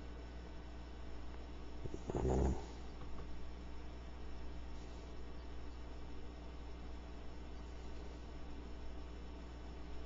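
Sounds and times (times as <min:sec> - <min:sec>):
steady low hum: 0:00.0 - 0:10.0
short low vocal sound: 0:01.8 - 0:02.8.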